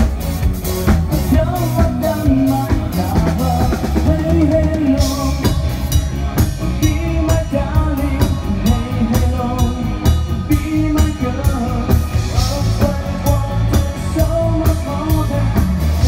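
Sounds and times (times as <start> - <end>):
bass guitar: 0.0 - 16.0
drum kit beat: 0.0 - 16.0
electric guitar: 0.0 - 16.0
man singing: 1.1 - 16.0.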